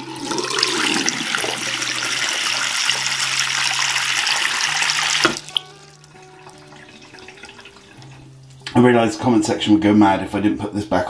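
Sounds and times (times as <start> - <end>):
tap water running into basin: 0.0 - 8.7
water draining: 0.0 - 8.8.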